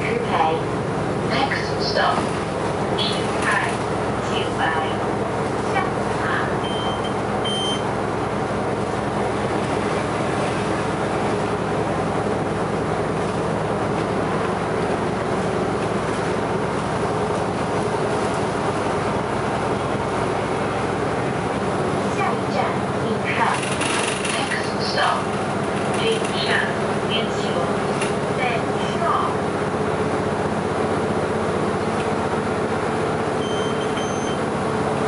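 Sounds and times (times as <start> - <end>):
bus engine drone: 0.0 - 35.0
road noise: 0.0 - 35.0
short high beeps: 6.6 - 7.8, 33.4 - 34.4.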